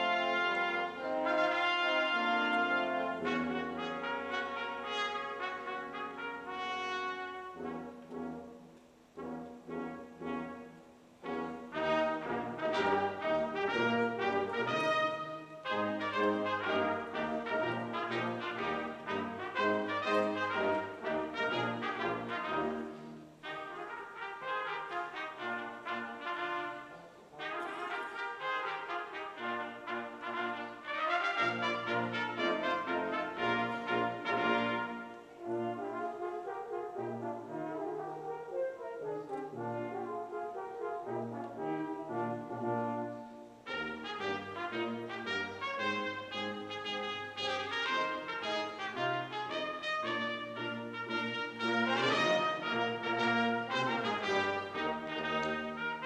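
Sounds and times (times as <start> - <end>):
brass ensemble playing: 0.0 - 56.0.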